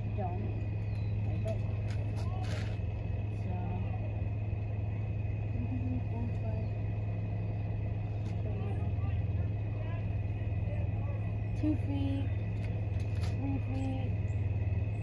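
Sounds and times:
low engine hum: 0:00.0 - 0:15.0.

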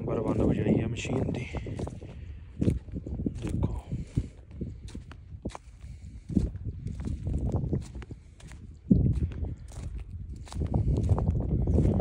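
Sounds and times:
footsteps on dry soil: 0:00.0 - 0:12.0.

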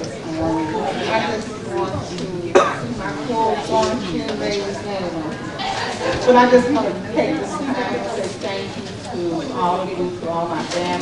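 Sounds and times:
indistinct voices: 0:00.0 - 0:11.0
person coughing: 0:02.5 - 0:02.9.

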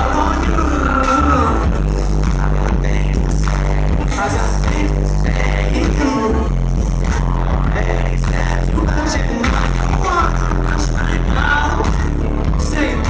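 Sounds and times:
deep bass: 0:00.0 - 0:13.0
man singing: 0:00.0 - 0:13.0
synthesizers: 0:00.0 - 0:13.0.

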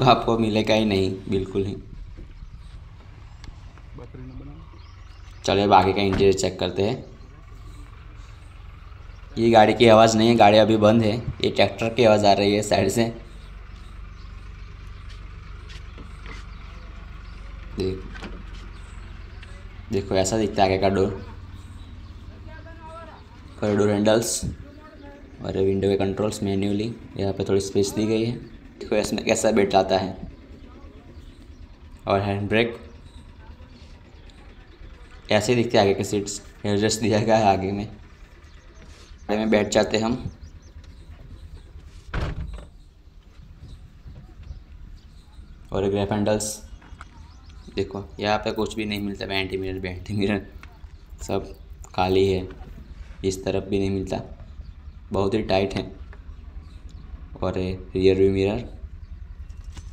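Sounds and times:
tractor engine running: 0:00.0 - 0:59.9
faint clicks: 0:03.0 - 0:04.2
car door shutting: 0:41.8 - 0:42.8.

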